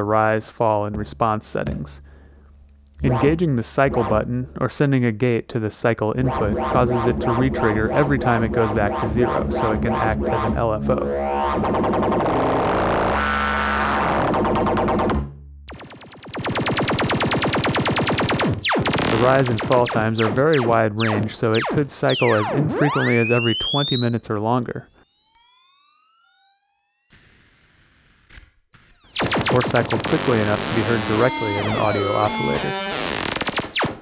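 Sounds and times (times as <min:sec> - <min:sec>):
sweeping synthesizer drone: 0:06.2 - 0:14.0, 0:28.9 - 0:33.8
oscillator tone rising into whine: 0:06.2 - 0:27.8, 0:28.8 - 0:34.0.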